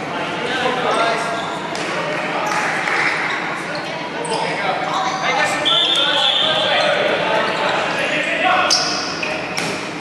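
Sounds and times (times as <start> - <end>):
players calling out: 1.1 - 9.5.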